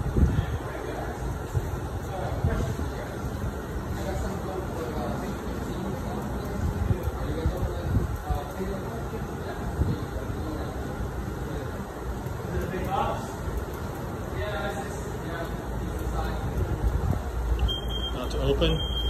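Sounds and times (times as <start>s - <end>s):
cook timer beeping: 17.6s - 19.0s.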